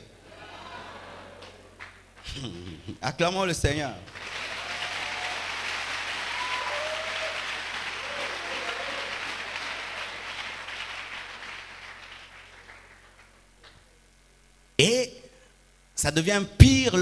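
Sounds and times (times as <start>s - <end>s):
congregation applauding: 4.1s - 13.8s
voices calling out: 6.2s - 10.3s.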